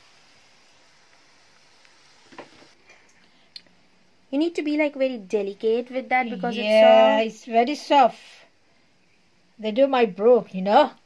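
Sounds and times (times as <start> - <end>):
pastry sizzling in oil: 0.0 - 2.8.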